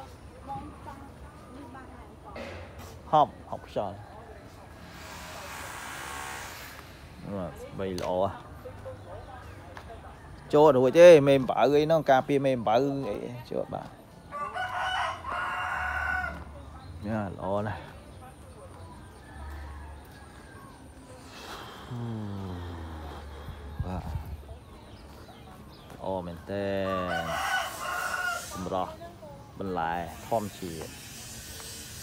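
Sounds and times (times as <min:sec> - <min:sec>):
rooster crowing: 0:14.3 - 0:16.6, 0:26.8 - 0:28.9.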